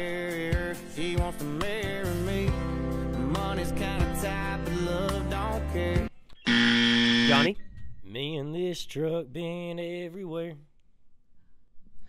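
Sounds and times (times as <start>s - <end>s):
game show buzzer: 6.5s - 7.6s.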